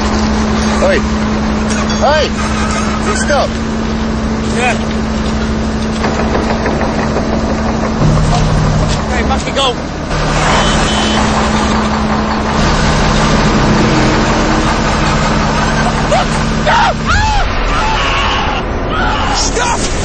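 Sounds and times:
heavy vehicle engine revving: 0.0 - 17.7.

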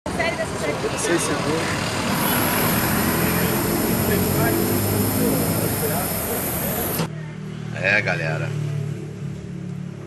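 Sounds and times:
vehicle engines running: 0.1 - 7.5
background voices: 1.8 - 7.1
thin high whine: 2.0 - 7.1.

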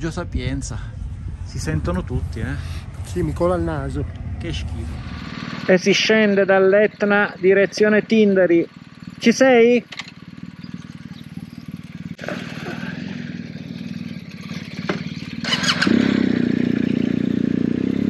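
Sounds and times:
motorcycle engine idling and revving: 0.0 - 18.0.

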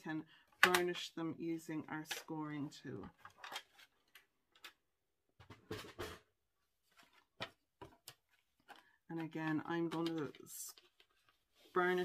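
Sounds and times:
cardstock rustles and taps on table: 7.0 - 8.9.

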